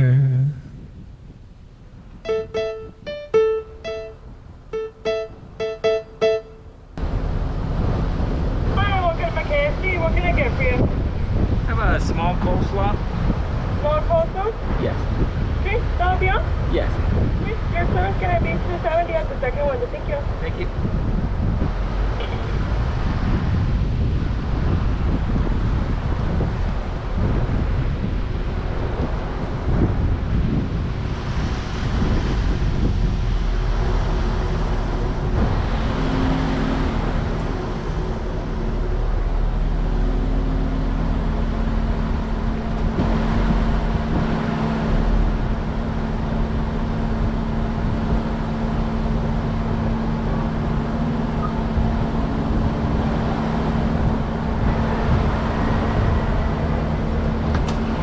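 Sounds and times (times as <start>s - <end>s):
steady hum: 32.1s - 58.0s
car engine idling: 33.5s - 58.0s.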